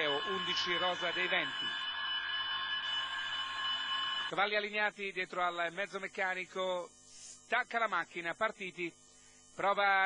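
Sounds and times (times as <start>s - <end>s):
buzzer-like tone: 0.0s - 10.0s.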